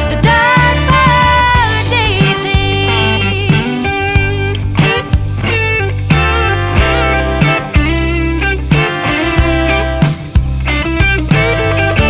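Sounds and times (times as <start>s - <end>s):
country-soul song with band: 0.0s - 12.0s.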